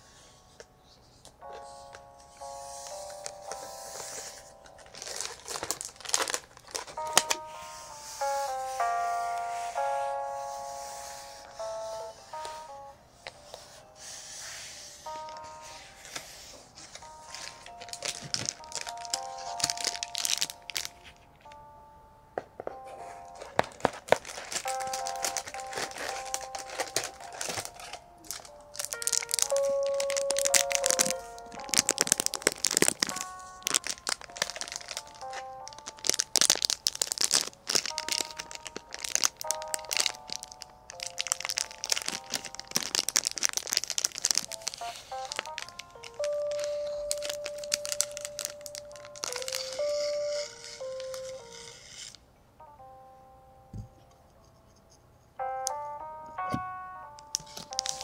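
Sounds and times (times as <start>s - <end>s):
crinkling handling sounds: 0.0s - 21.7s, 22.4s - 52.2s, 56.4s - 58.0s
soft background music: 0.0s - 58.0s.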